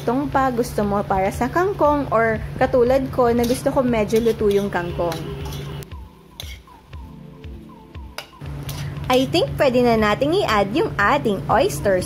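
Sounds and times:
soft background music: 0:00.0 - 0:12.0
light sizzling: 0:03.0 - 0:06.9
metal spatula scraping a wok: 0:03.3 - 0:06.8.

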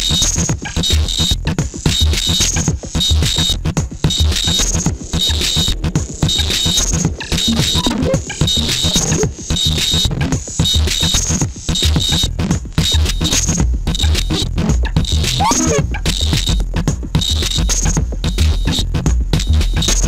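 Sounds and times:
deep kick drum: 0:00.0 - 0:20.0
electronic synthesizer music: 0:04.1 - 0:09.5, 0:15.1 - 0:16.3.

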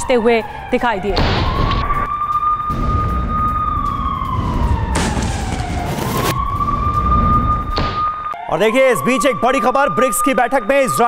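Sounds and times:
air raid siren wailing: 0:00.0 - 0:11.0
low rumble: 0:02.7 - 0:08.2.

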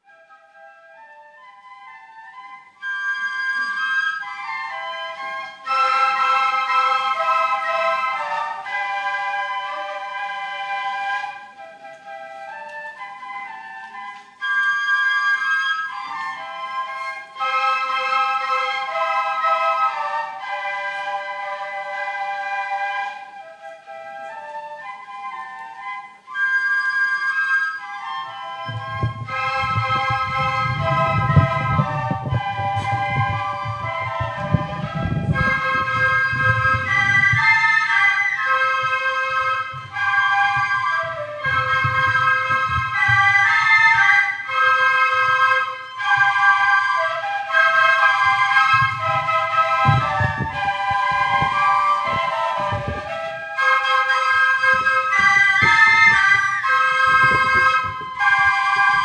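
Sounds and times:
ensemble of small flutes: 0:00.0 - 0:59.0.

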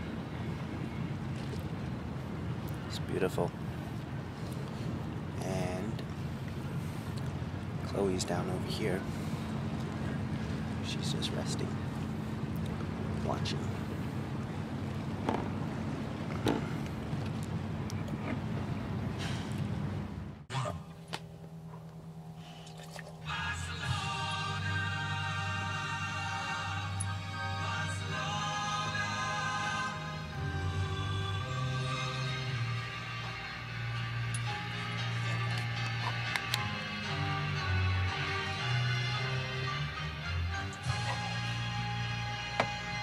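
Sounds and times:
steady low hum: 0:00.0 - 0:38.2
background music: 0:23.2 - 0:43.0.

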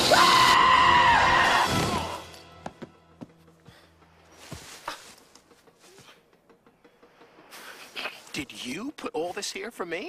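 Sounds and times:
long high held cry: 0:00.0 - 0:02.2
film soundtrack music: 0:00.0 - 0:10.0.

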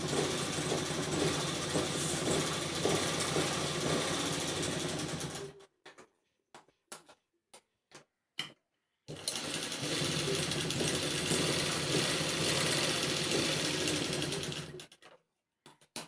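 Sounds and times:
sewing machine running: 0:00.0 - 0:05.6, 0:09.1 - 0:14.9.

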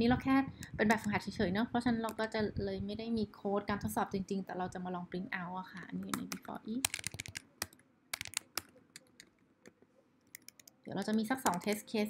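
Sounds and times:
keyboard key clicks: 0:06.0 - 0:09.4, 0:10.3 - 0:11.9.

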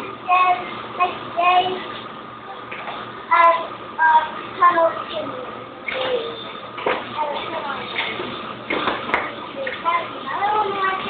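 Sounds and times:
young child singing: 0:00.0 - 0:01.9, 0:03.3 - 0:06.4, 0:09.6 - 0:11.0.

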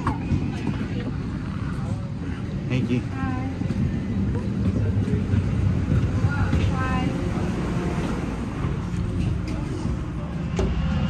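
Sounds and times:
airliner cabin rumble: 0:00.0 - 0:11.0
faint passenger voices: 0:00.0 - 0:11.0.

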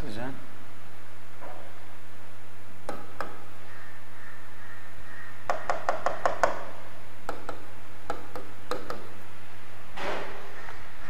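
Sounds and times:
low electrical hum: 0:00.0 - 0:11.0
marker tapping on a writing board: 0:02.9 - 0:03.4, 0:05.5 - 0:06.7, 0:07.3 - 0:09.1.

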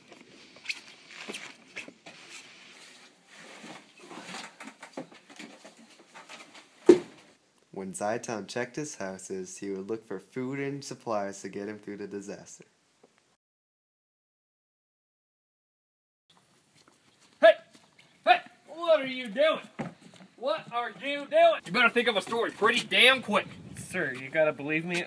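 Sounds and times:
man shouting: 0:17.4 - 0:17.7, 0:18.3 - 0:19.7.

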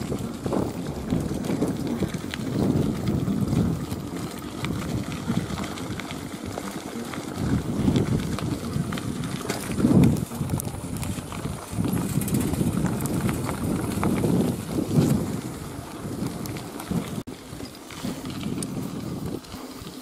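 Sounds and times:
bike rattling over bumps: 0:00.0 - 0:20.0
tyres crunching on gravel: 0:00.0 - 0:20.0
wind rumble on microphone: 0:00.0 - 0:20.0.

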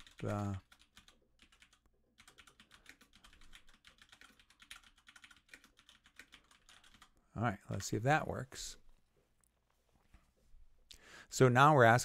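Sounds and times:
faint computer keyboard typing: 0:00.0 - 0:07.9.

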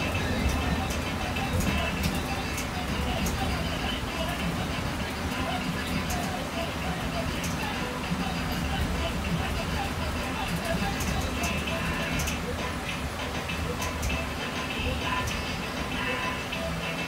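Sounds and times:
bus engine and road rumble: 0:00.0 - 0:17.0
faint radio music: 0:00.0 - 0:17.0.

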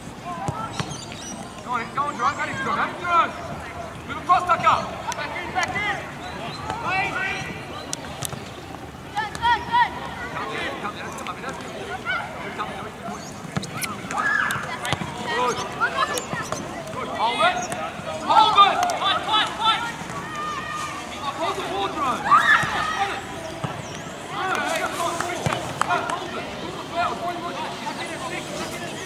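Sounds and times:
people shouting: 0:18.2 - 0:23.3.

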